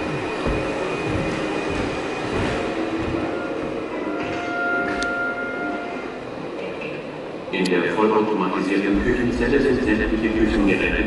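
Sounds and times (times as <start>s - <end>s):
steady rumbling noise: 6.2s - 11.0s.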